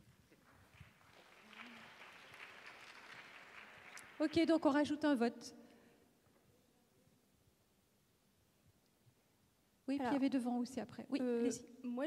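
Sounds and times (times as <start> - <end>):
faint scattered applause: 0.0 - 4.7.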